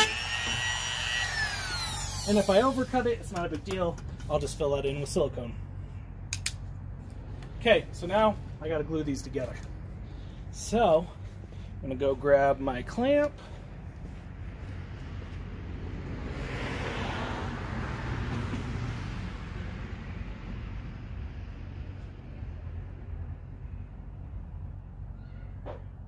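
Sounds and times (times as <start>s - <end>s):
vehicle passing by: 13.4s - 24.7s.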